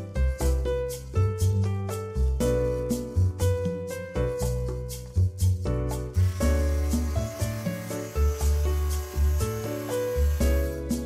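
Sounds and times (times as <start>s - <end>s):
music with bass beat: 0.0s - 11.0s
hissing rasping noise: 6.1s - 11.0s.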